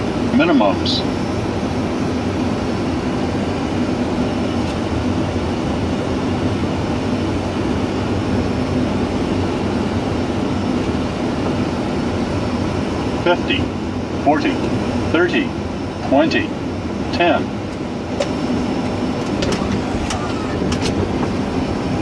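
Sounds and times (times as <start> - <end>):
aircraft engine hum: 0.0 - 22.0
rushing airflow: 16.6 - 22.0.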